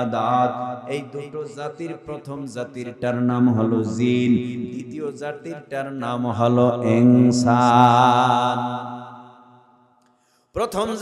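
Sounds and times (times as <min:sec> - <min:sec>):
man chanting a sermon: 0:00.0 - 0:09.2, 0:10.6 - 0:11.0.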